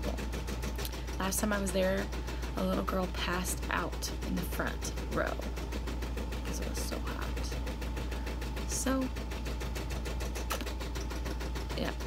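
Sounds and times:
embroidery machine stitching: 0:00.0 - 0:12.0.

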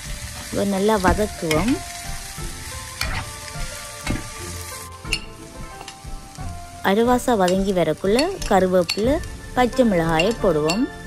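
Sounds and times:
vegetables sizzling in a frying pan: 0:00.0 - 0:11.0
spatula scraping a pan: 0:02.9 - 0:06.1.

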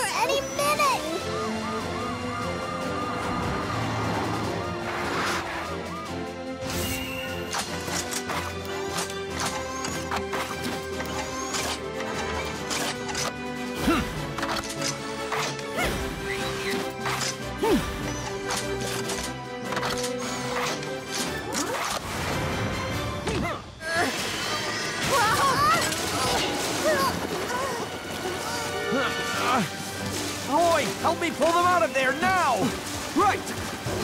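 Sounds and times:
water spraying: 0:27.8 - 0:34.0.

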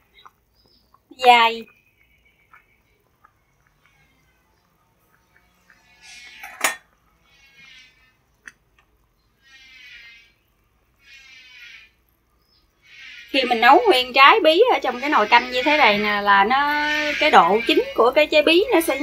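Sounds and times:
metal ladle clinking on pot: 0:06.3 - 0:06.9.

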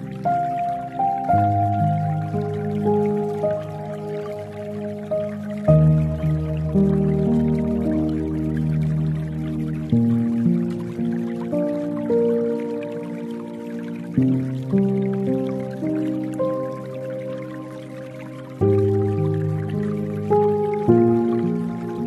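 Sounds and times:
dripping water: 0:00.0 - 0:22.0
soft slow piano chords: 0:00.0 - 0:22.0.

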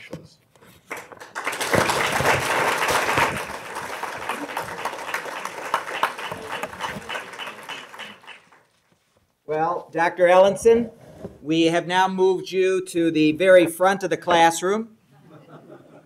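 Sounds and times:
audience applauding: 0:00.9 - 0:08.8.

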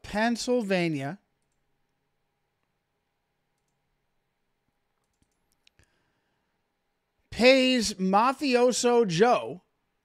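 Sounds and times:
man speaking: 0:00.0 - 0:01.3, 0:07.3 - 0:09.7
faint computer mouse clicks: 0:03.6 - 0:03.8, 0:05.0 - 0:05.9.

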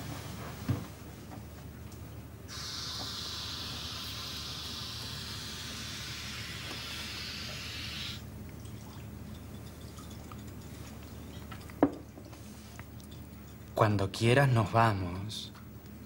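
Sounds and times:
low steady hum: 0:00.0 - 0:16.0
steady rushing hiss: 0:02.5 - 0:08.2.

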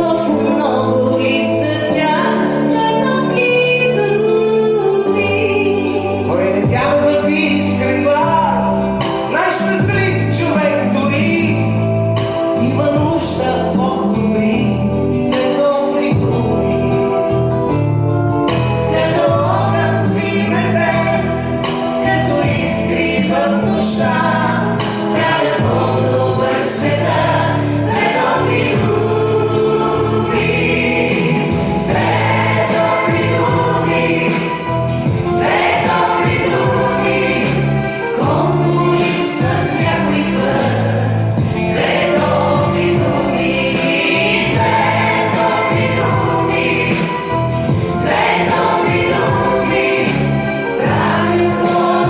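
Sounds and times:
steady bass: 0:05.2 - 0:52.0
voices singing together: 0:18.6 - 0:52.0.

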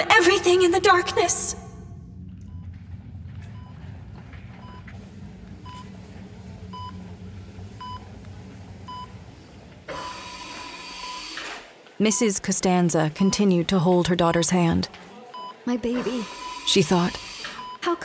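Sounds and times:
low hum: 0:00.0 - 0:11.2
heart monitor beeping: 0:02.0 - 0:09.3, 0:09.9 - 0:11.6, 0:12.8 - 0:17.9.

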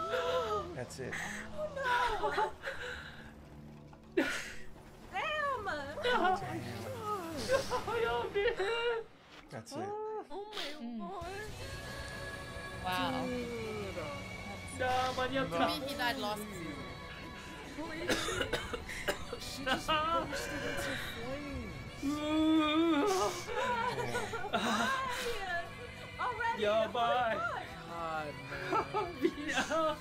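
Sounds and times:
person crying with wails: 0:00.0 - 0:02.8, 0:19.4 - 0:25.6
faint music: 0:00.0 - 0:30.0
low voices: 0:09.8 - 0:18.4
person coughing: 0:18.0 - 0:19.4.

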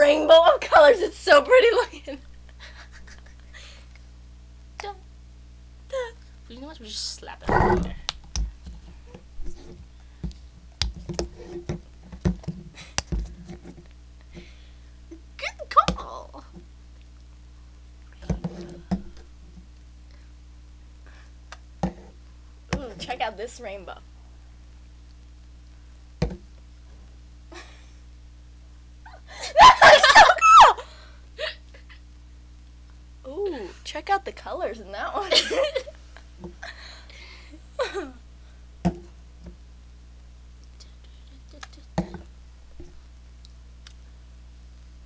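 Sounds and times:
low room hum: 0:00.0 - 0:45.0
woman laughing: 0:01.7 - 0:03.8, 0:29.1 - 0:32.0, 0:35.2 - 0:36.0, 0:37.8 - 0:38.2.

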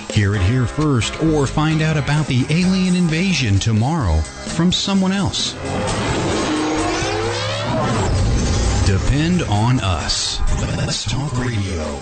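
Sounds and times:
music bed with low bass: 0:00.0 - 0:12.0
rising whoosh: 0:05.5 - 0:10.6.

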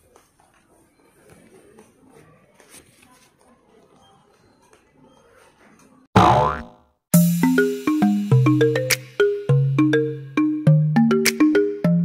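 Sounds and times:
shopping mall background noise: 0:00.0 - 0:06.1
cartoon boing sound effect: 0:06.2 - 0:06.8
plucked marimba-like music: 0:07.2 - 0:12.0.

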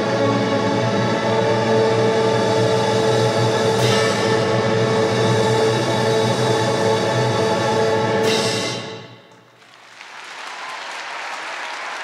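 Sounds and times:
orchestra playing held chords: 0:00.0 - 0:09.2.

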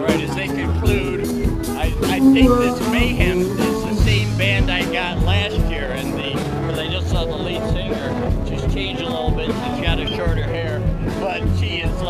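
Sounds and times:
bass notes: 0:00.0 - 0:12.0
live band music: 0:00.0 - 0:12.0
drum hits: 0:00.1 - 0:12.0
wavering lead line: 0:01.0 - 0:06.0.

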